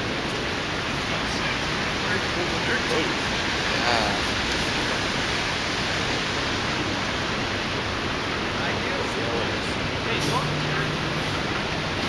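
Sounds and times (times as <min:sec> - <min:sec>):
steady rushing noise: 0:00.0 - 0:12.0
faint voices: 0:01.1 - 0:04.5.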